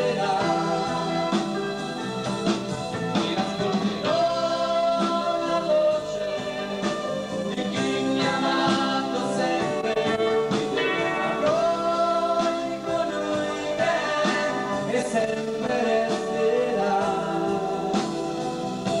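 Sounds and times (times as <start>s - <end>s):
drums: 0.0s - 19.0s
electric guitar: 0.0s - 19.0s
two men singing gospel: 0.0s - 19.0s.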